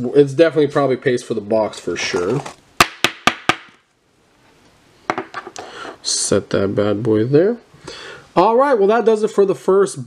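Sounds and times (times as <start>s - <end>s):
plastic sleeve rustling: 1.7s - 2.6s.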